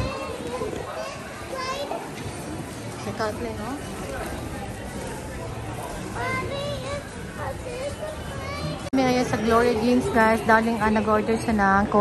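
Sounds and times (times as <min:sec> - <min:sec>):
young child's high-pitched voice: 0:00.0 - 0:02.0, 0:06.2 - 0:08.9
murmur of shoppers: 0:00.0 - 0:12.0.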